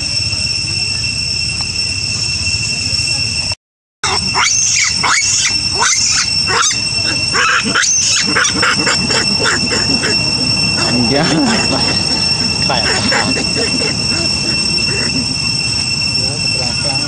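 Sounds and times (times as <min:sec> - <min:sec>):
high-pitched drone: 0:00.0 - 0:17.0
monkeys screeching: 0:04.0 - 0:17.0.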